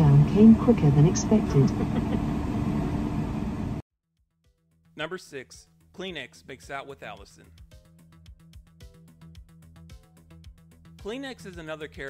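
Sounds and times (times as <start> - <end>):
car cabin hum and rumble: 0.0 - 3.8
person laughing: 1.6 - 2.4.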